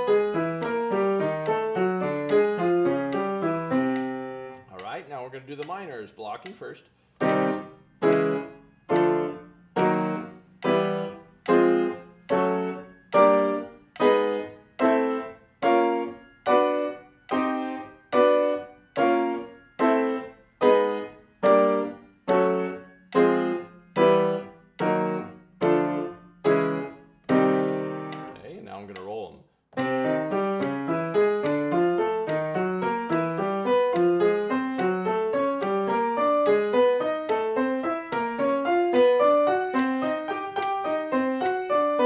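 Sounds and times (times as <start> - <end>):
piano playing blocked chords: 0.0 - 6.6, 7.2 - 29.2, 29.8 - 42.0.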